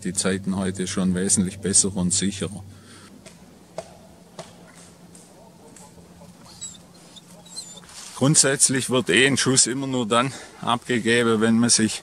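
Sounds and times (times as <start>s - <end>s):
faint low hum: 0.0s - 12.0s
small bird chirping: 6.2s - 8.0s.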